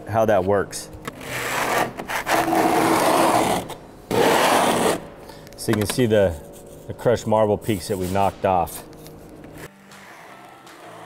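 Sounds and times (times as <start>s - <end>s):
hand scraper scraping concrete: 1.1s - 5.0s.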